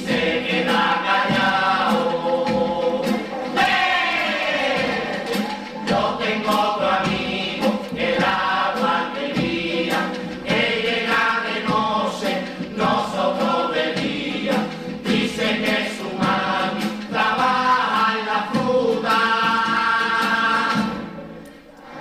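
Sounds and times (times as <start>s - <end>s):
drum strokes: 0.0s - 22.0s
male chorus singing: 0.0s - 22.0s
strummed guitars: 0.0s - 22.0s.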